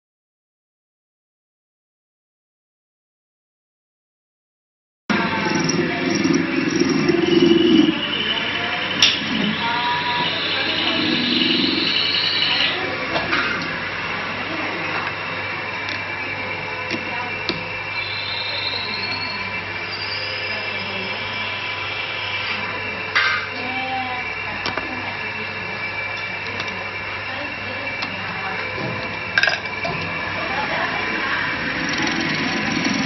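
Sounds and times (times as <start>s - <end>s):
indistinct voices: 5.1s - 33.0s
machine hum with tones: 5.1s - 33.0s.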